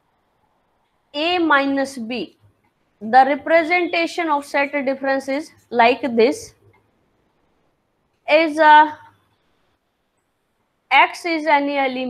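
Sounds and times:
woman speaking: 1.2s - 2.4s, 3.0s - 6.6s, 8.3s - 9.1s, 10.9s - 12.0s.

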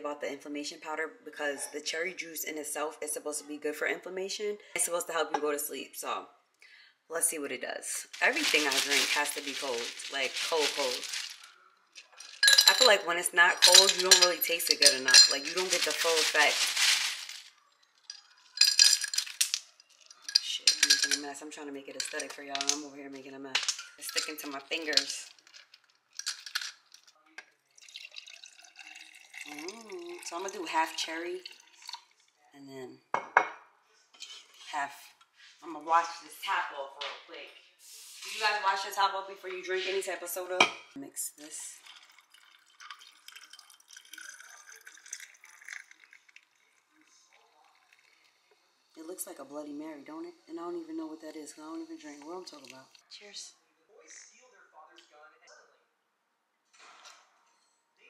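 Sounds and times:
liquid fizzing: 8.0s - 21.2s, 27.8s - 32.4s, 41.7s - 49.0s
ice cubes clinking in glass: 8.1s - 22.8s, 23.6s - 27.1s, 41.8s - 46.2s.

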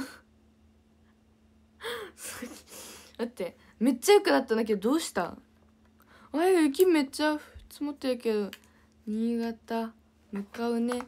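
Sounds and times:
faint steady hum: 0.0s - 11.0s
woman laughing: 1.9s - 3.0s
young woman's voice: 3.1s - 5.5s, 6.3s - 11.0s.

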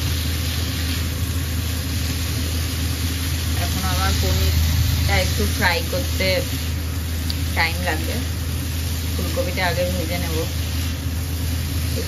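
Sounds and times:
cauliflower frying in a pan: 0.0s - 12.0s
steady low hum: 0.0s - 12.0s.

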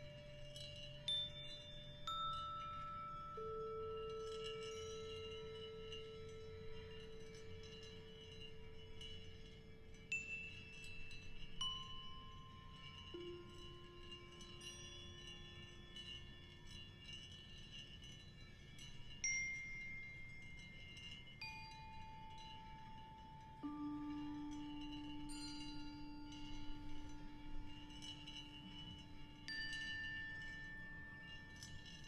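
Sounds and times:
bell-like struck tones: 0.0s - 32.0s.

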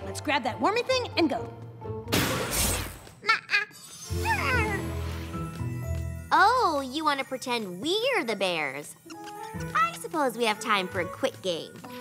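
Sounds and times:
light background music: 0.0s - 3.2s, 3.9s - 12.0s.

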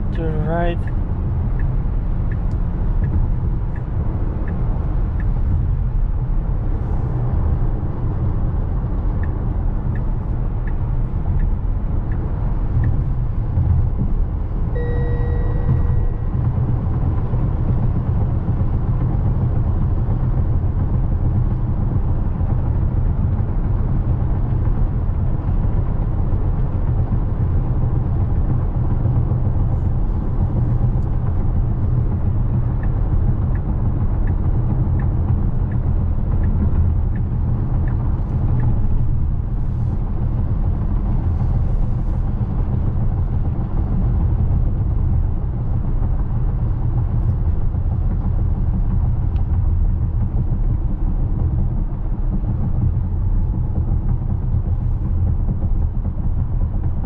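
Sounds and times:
tyre and wind noise in car: 0.0s - 57.0s
brief electronic tone: 14.7s - 16.5s.

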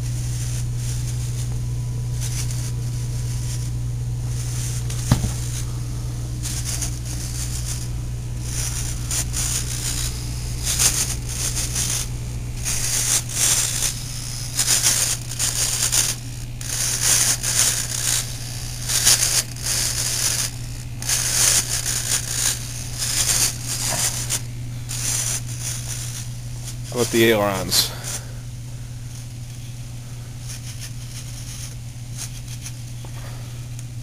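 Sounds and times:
servos buzzing: 0.0s - 34.0s
steady low hum: 0.0s - 34.0s.

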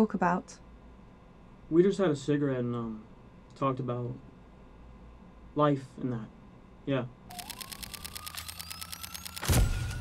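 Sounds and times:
rapid sharp clicks: 7.3s - 10.0s.

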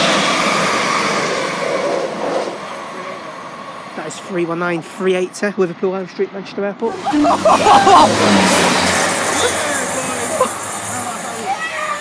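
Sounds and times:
train wheel noise: 0.0s - 5.0s, 7.0s - 12.0s
diesel railcar engine hum: 6.8s - 12.0s.

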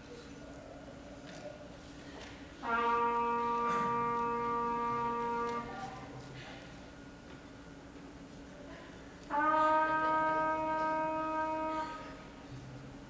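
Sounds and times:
faint hall noise: 0.0s - 13.0s
wind instrument long held note: 2.6s - 6.2s, 9.2s - 12.7s.

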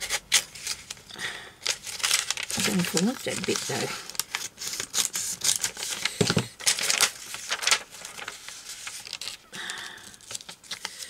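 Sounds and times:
paper sheets rustling and sliding: 1.6s - 9.4s.

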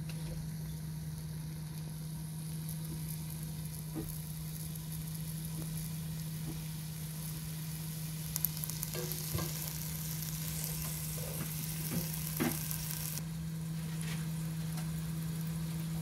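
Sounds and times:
meat sizzling in a pan: 0.0s - 16.0s.

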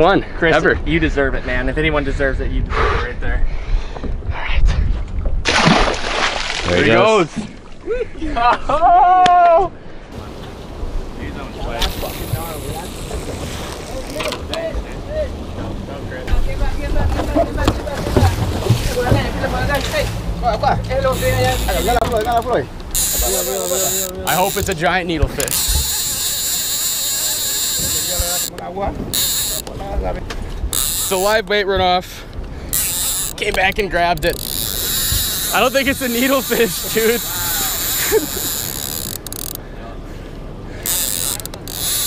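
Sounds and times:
wind buffeting microphone: 0.6s - 5.5s, 23.9s - 31.1s
distant voices calling: 10.0s - 42.0s
outboard motor hum: 10.2s - 42.0s
water lapping against boat hull: 10.2s - 42.0s
fishing reel drag buzzing: 21.0s - 29.7s, 30.7s - 31.4s, 32.7s - 39.6s, 40.8s - 42.0s.

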